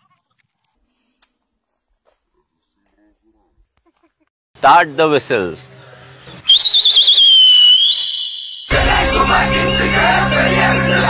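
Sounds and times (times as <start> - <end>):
loud finger whistle: 6.3 - 9.7
loud music: 8.7 - 11.0.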